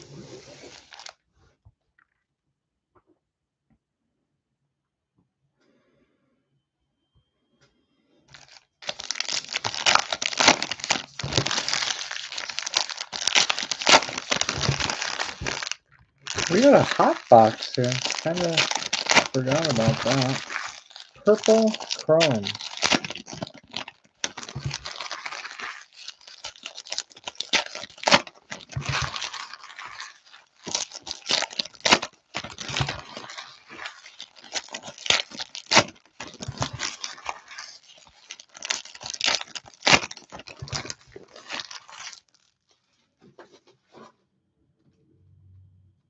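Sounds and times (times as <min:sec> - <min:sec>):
foil wrappers tearing and crinkling: 0:00.0 - 0:01.1, 0:08.3 - 0:42.6.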